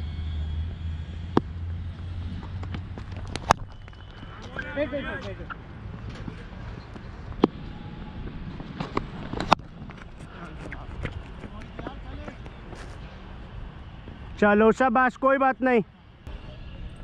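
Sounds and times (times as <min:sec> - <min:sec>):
low rumble of open air: 0:00.0 - 0:14.8.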